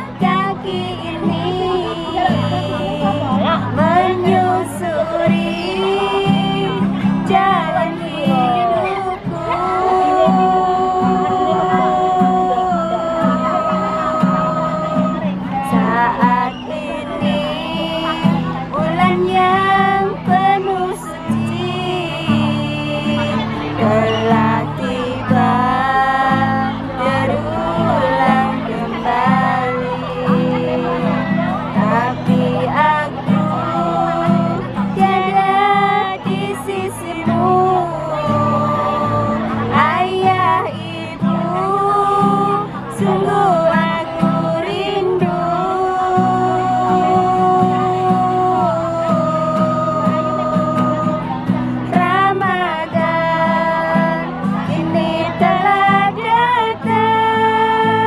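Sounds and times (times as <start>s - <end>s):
strummed acoustic guitar: 0.0s - 58.0s
women singing slow song: 0.0s - 58.0s.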